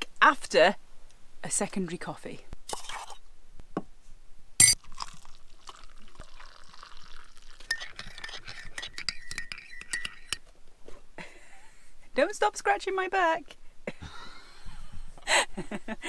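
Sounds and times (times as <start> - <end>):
teaspoon clinking in mug: 7.6 - 10.4.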